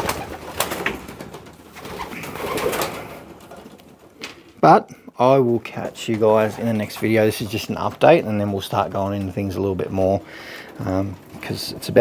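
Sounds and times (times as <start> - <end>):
wings flapping: 0.0 - 4.6
pigeons cooing: 1.7 - 4.4.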